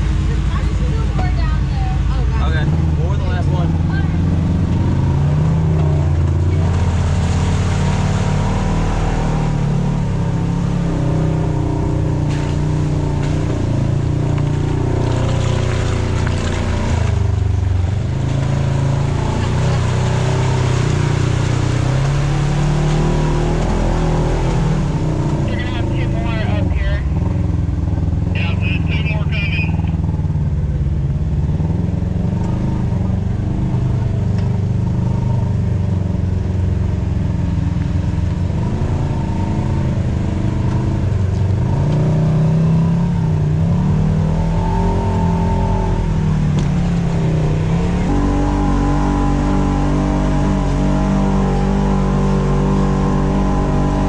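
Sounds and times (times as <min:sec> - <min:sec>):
utility vehicle engine running: 0:00.0 - 0:54.0.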